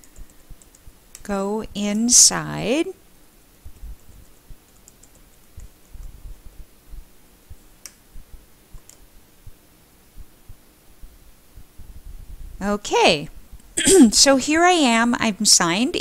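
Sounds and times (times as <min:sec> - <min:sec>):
computer keyboard keystrokes: 0:00.0 - 0:01.2, 0:03.7 - 0:06.1, 0:08.8 - 0:09.0.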